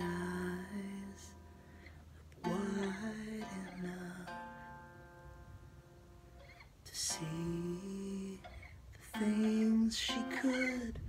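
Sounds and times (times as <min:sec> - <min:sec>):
person singing: 0:00.0 - 0:01.6, 0:02.4 - 0:04.9, 0:06.8 - 0:11.0
acoustic guitar chord ringing: 0:00.0 - 0:11.0.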